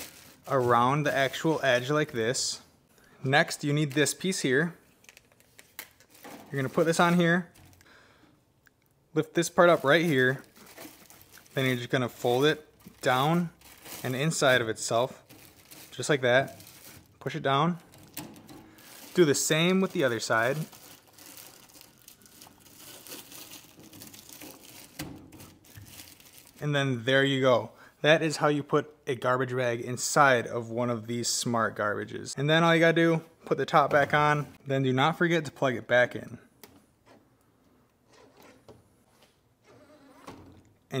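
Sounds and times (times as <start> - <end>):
plastic garbage bag crinkling: 0.0 - 2.2, 3.6 - 7.8, 9.4 - 26.6
soft rustling: 9.7 - 17.1.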